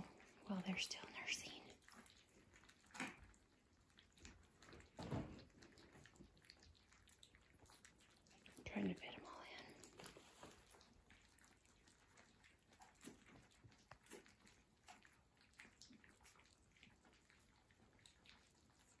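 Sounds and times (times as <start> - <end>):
puppies chewing and lapping: 0.0 - 19.0.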